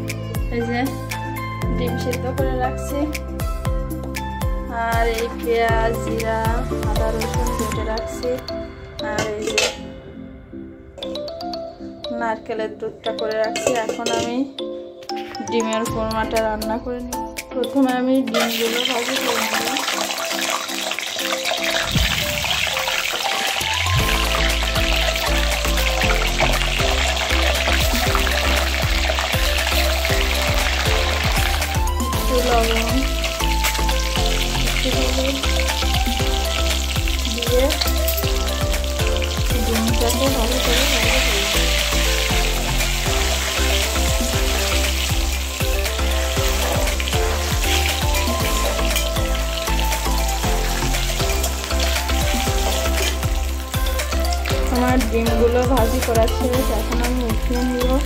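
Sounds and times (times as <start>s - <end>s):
eggs sizzling in hot oil: 18.3s - 58.0s
music with deep repeating bass: 23.7s - 58.0s.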